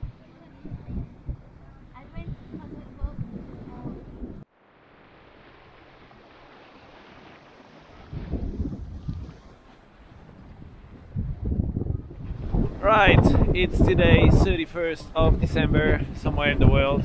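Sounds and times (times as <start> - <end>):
wind buffeting microphone: 0.0 - 4.5, 7.8 - 17.0
water rushing past hull: 0.0 - 17.0.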